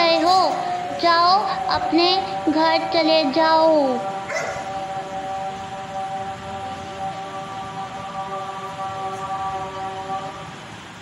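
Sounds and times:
background music with steady tones: 0.0s - 11.0s
dog bark: 4.3s - 4.7s.

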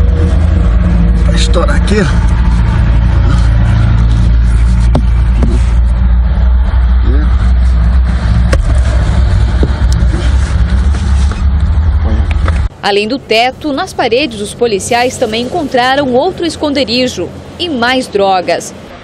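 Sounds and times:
diesel engine idling: 0.0s - 18.2s
sharp knocks: 4.9s - 5.7s, 8.4s - 8.8s.

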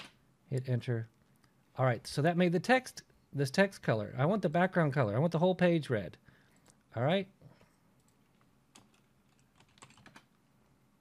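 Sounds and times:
faint keyboard typing: 7.5s - 10.4s.

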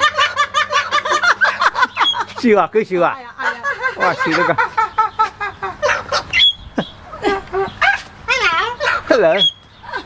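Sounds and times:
cockatoo squawking: 0.0s - 2.4s, 3.4s - 10.0s.

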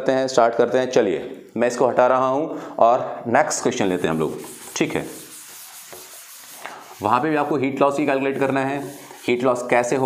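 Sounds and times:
duster rubbing chalkboard: 3.5s - 10.0s.

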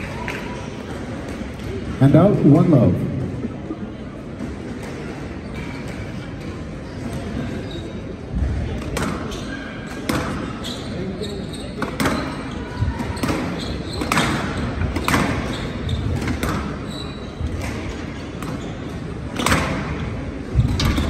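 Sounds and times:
squash ball hits echoing: 8.4s - 10.6s, 11.8s - 16.8s, 17.4s - 21.0s.

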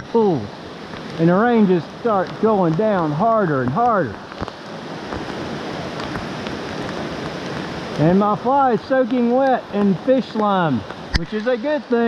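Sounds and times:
heavy rain on water: 0.0s - 12.0s
sharp raindrop taps: 0.8s - 12.0s.

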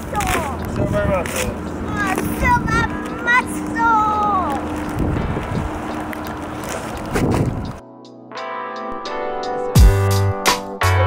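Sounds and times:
wind on microphone: 0.0s - 7.8s
guitar music: 0.0s - 11.0s.

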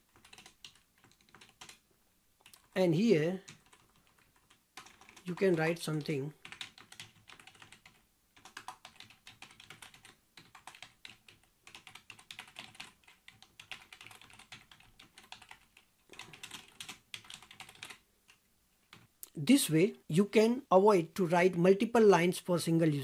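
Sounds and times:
computer keyboard typing: 0.0s - 1.8s, 2.4s - 19.4s.

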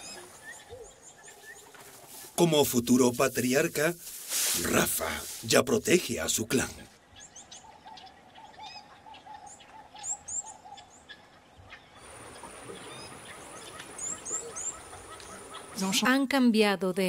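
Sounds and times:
forest ambience: 0.0s - 17.0s.

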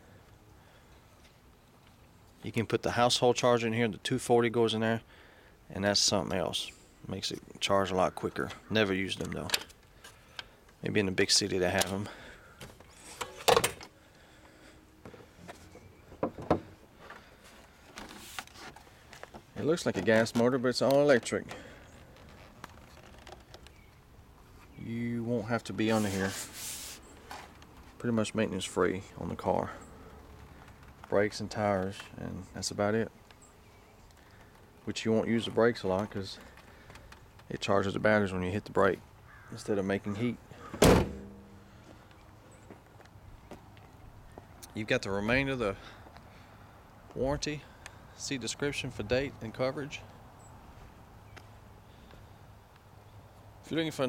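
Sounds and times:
car panel clunk: 40.7s - 41.4s.

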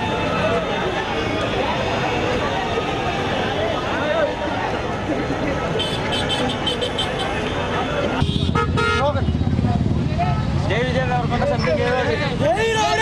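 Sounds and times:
street traffic: 0.0s - 13.0s
vehicle horn: 5.8s - 9.3s
crowd shouting: 11.9s - 13.0s.

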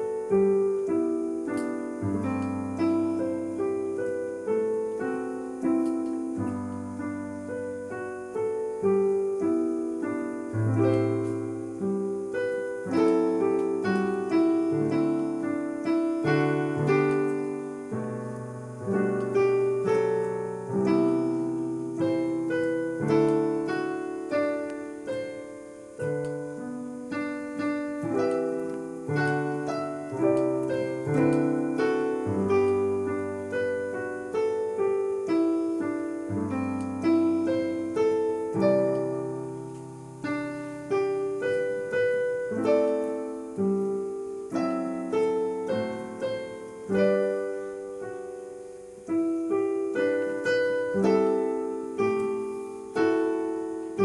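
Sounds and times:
digital piano playing chords: 0.0s - 54.0s.

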